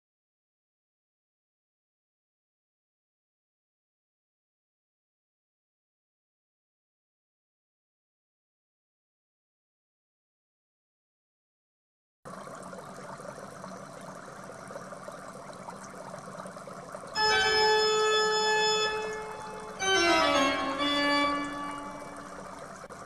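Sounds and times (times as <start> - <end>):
organ chords: 17.2 - 22.8.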